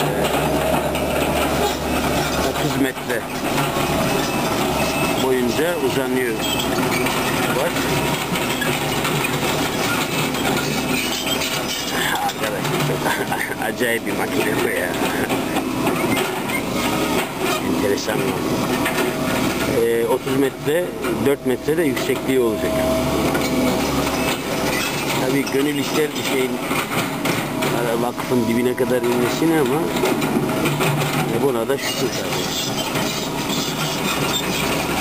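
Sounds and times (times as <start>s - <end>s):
clanking clatter: 0.0s - 35.0s
excavator diesel engine running: 0.0s - 35.0s.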